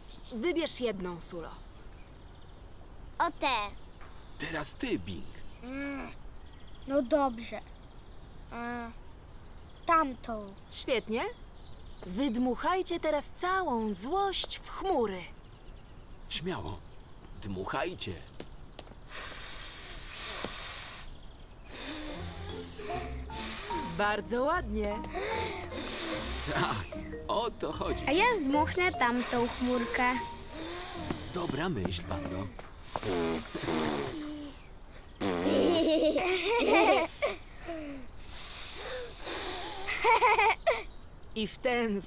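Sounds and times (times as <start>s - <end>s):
children blowing breathy puffs: 19.0s - 24.0s, 25.1s - 26.8s, 29.1s - 31.4s, 32.4s - 35.6s, 37.1s - 40.1s
soft background music: 21.8s - 32.6s
young children giggling: 33.0s - 34.6s, 35.2s - 38.0s, 39.0s - 40.9s.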